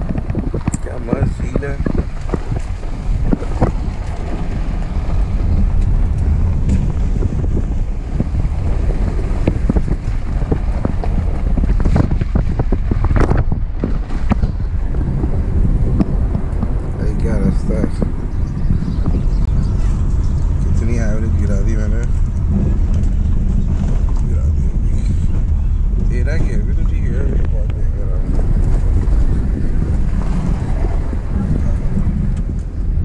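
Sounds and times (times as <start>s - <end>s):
car driving on rough road: 0.0s - 33.0s
wind buffeting microphone: 0.0s - 33.0s
voices: 0.6s - 2.0s, 16.8s - 23.0s, 24.1s - 28.4s.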